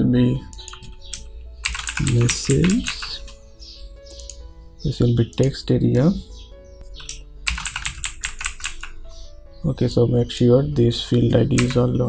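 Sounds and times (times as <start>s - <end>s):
typing on computer keyboard: 0.5s - 3.4s, 7.0s - 9.0s, 11.6s - 11.9s.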